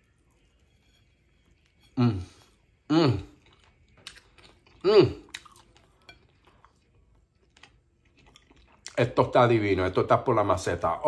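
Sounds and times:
man chewing food: 0.0 - 9.0
man humming mm: 2.0 - 3.4, 4.8 - 5.3.

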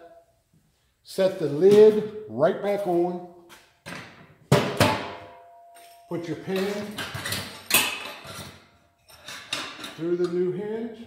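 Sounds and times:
metal hinge pin clinking and scraping: 5.7 - 10.4.

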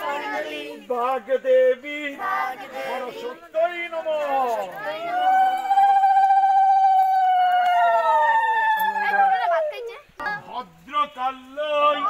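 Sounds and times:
women ululating: 4.8 - 9.9.

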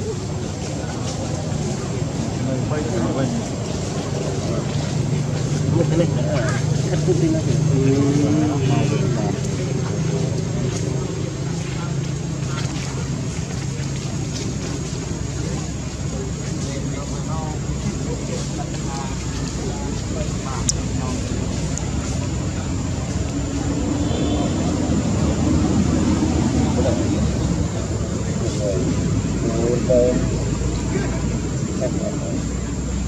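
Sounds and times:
faint voices: 0.0 - 33.0
low engine-like rumble: 0.0 - 33.0.

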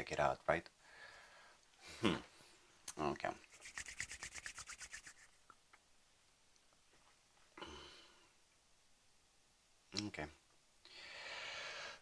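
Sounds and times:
hands rubbing together: 3.4 - 5.4.

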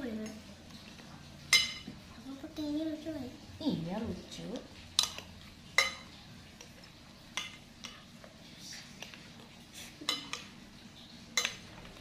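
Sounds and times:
cutlery clinking against glass bowl: 1.5 - 2.0, 5.0 - 8.0, 10.0 - 10.6, 11.4 - 11.9.

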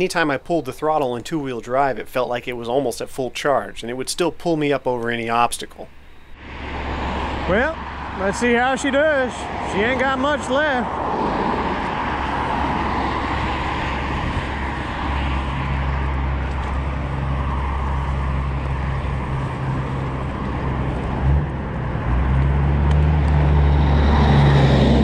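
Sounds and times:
road traffic passing: 0.0 - 25.0
wind: 0.0 - 25.0
truck engine hum: 5.8 - 25.0
electric scooter rolling on grass: 6.7 - 23.9.

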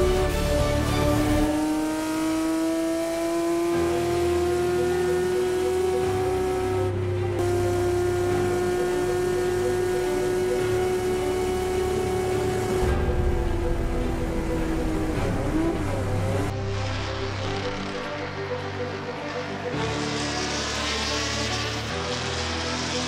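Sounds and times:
racing engine at full throttle: 0.0 - 23.0.

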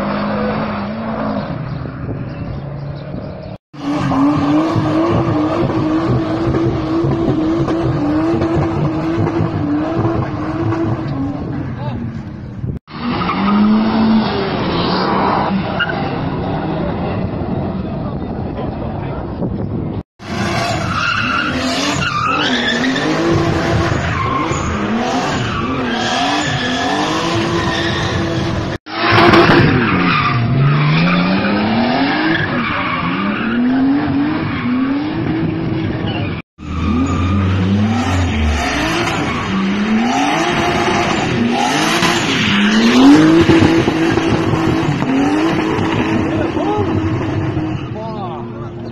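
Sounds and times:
tyres skidding and squealing: 0.0 - 48.9
car engine revving hard: 3.8 - 11.6, 20.2 - 47.8.

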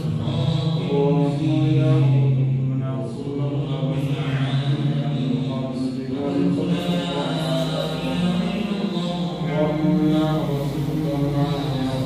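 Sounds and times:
man chanting melodically: 0.0 - 12.0.

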